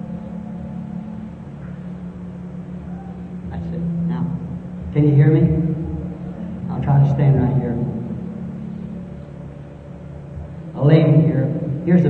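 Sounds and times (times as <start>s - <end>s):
hall background noise: 0.0s - 12.0s
recording hum and hiss: 0.0s - 12.0s.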